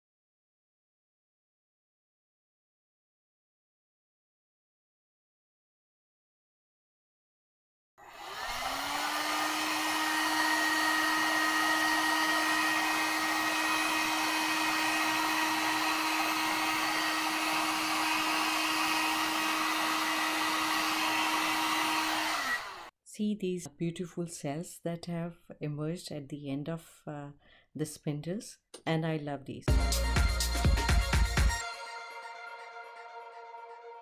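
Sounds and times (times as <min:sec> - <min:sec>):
heat gun fan humming: 0:08.0 - 0:22.9.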